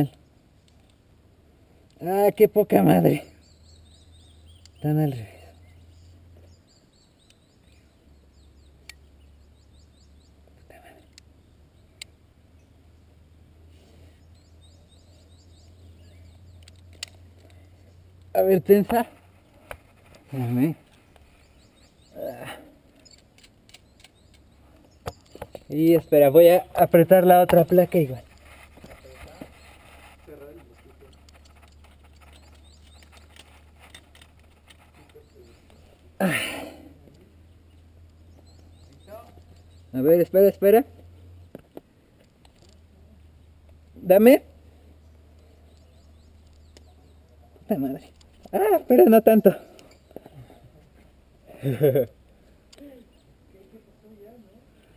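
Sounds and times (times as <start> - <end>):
climbing gear clicking on rock: 22.8 - 26.1, 26.8 - 35.8, 42.2 - 42.9.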